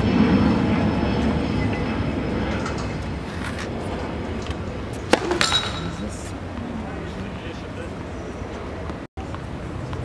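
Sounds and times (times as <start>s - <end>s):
outdoor stadium ambience: 0.0s - 10.0s
smaller ball impact: 4.9s - 6.1s
tennis ball struck by racket: 4.9s - 6.3s.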